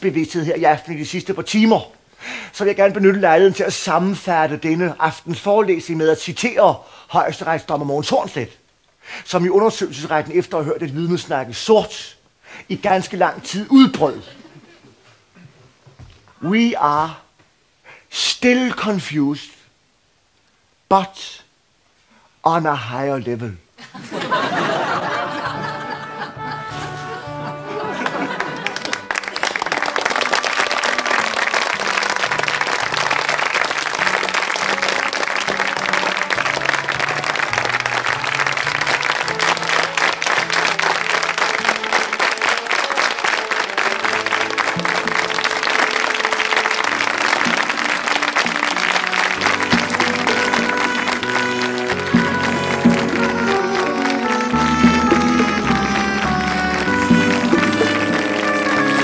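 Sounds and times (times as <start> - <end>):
closing music: 24.9 - 59.0
audience applauding: 27.2 - 59.0.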